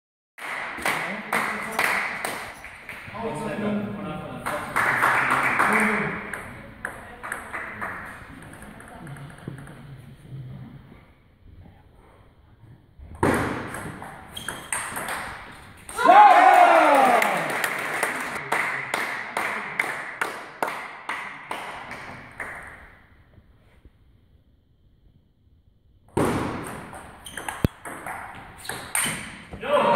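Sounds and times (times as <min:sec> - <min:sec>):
hand claps in a sports hall: 0:00.4 - 0:03.2, 0:04.4 - 0:08.3, 0:15.9 - 0:22.9
loud shout: 0:15.9 - 0:17.6, 0:29.6 - 0:29.9.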